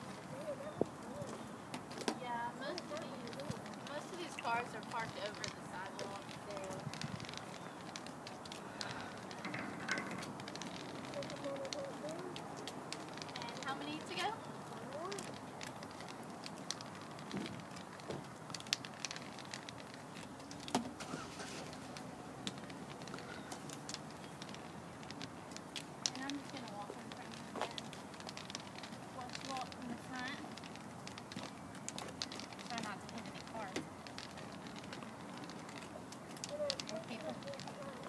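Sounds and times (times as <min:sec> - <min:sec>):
footsteps on asphalt: 0:00.0 - 0:11.1, 0:12.2 - 0:36.4
faint voices: 0:00.1 - 0:01.6, 0:02.3 - 0:16.4, 0:31.4 - 0:38.0.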